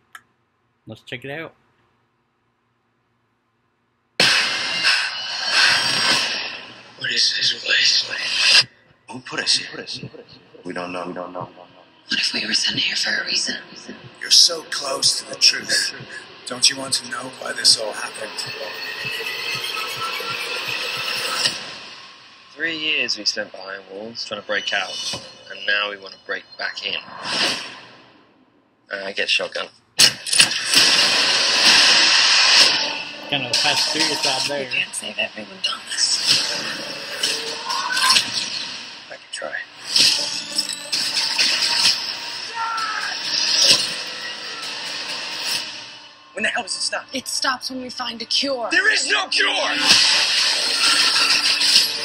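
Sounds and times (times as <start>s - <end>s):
sharp hit: 4.2s - 7.0s, 30.0s - 34.8s, 49.7s - 52.0s
action sound effects: 4.2s - 28.2s, 30.0s - 46.7s, 48.5s - 52.0s.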